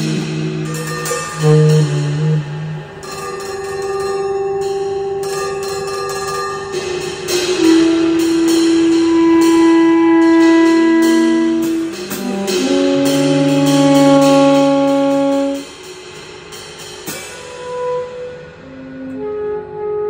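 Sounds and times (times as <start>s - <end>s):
tenor saxophone: 0.0s - 15.8s, 17.6s - 20.0s
light percussion strokes: 0.0s - 19.4s.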